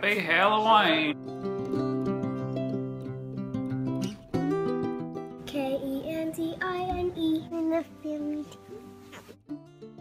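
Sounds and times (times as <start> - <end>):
child singing: 5.5 - 8.7.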